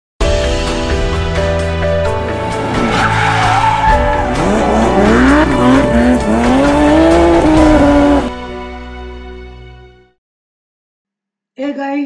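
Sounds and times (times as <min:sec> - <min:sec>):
car engine revving: 0:02.2 - 0:08.3
tyres screeching: 0:02.5 - 0:08.3.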